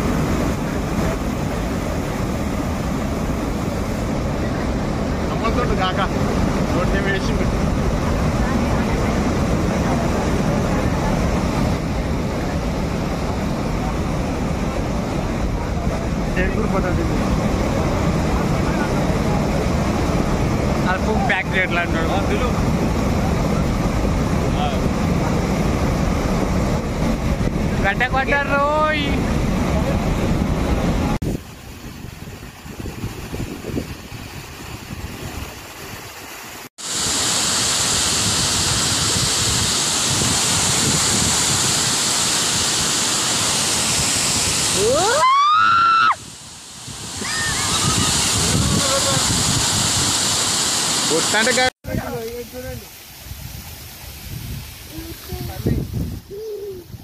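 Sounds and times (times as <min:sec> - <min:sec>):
water roaring over spillway: 0:00.0 - 0:57.0.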